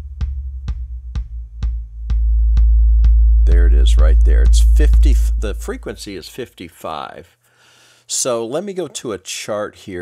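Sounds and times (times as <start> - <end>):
electronic kick drum loop: 0.0 - 6.2
loud steady low boom: 3.4 - 6.1.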